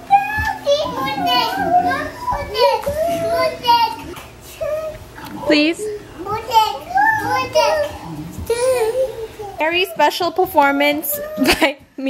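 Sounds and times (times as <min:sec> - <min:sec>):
toddlers babbling and calling out: 0:00.0 - 0:11.6.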